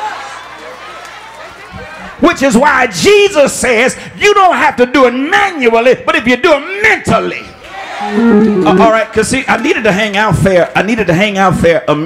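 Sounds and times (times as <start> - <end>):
congregation murmuring: 8.0 - 9.1.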